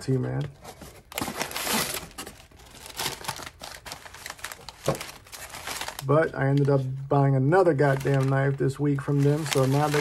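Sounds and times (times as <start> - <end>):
packing paper crumpling: 1.1 - 10.0.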